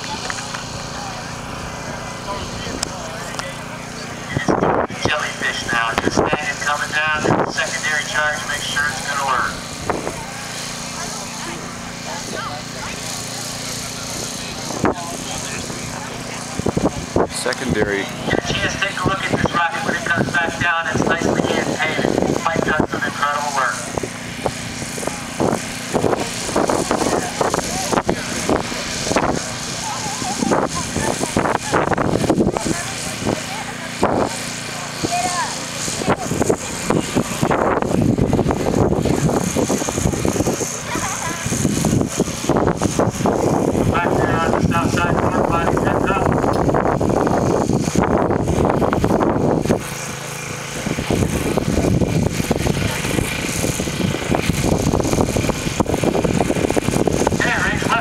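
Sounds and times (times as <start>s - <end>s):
people talking: 0.0s - 37.7s, 38.5s - 42.9s, 43.7s - 46.5s, 50.1s - 54.7s, 57.2s - 58.0s
low engine-like hum: 0.0s - 58.0s.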